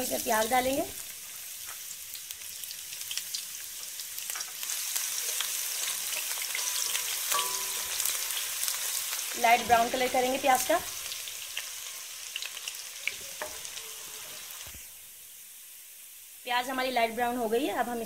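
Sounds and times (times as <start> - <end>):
onions sizzling in hot oil: 0.0 - 18.0.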